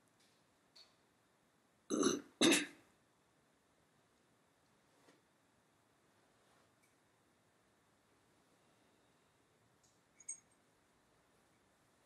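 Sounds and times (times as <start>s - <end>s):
person clearing throat: 1.9s - 2.8s.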